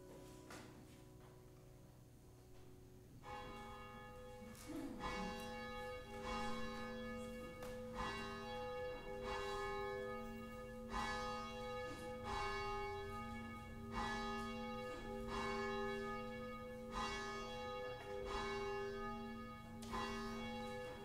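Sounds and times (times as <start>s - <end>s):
church bell ringing: 0.0s - 21.0s.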